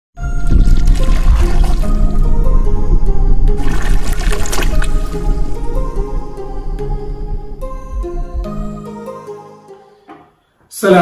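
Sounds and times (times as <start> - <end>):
water pouring and splashing: 0.2 - 2.1, 3.5 - 5.9
loud intro music: 0.2 - 10.0.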